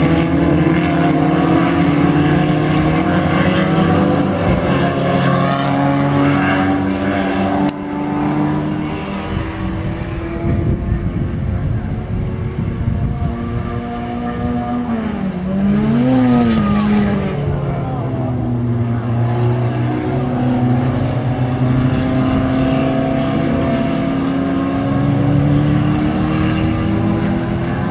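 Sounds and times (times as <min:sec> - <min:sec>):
race car engines running: 0:00.0 - 0:27.9.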